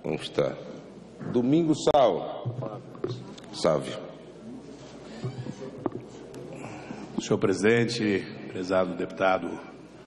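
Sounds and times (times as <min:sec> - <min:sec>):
room noise: 0:00.0 - 0:10.0
faint voices: 0:04.2 - 0:07.4.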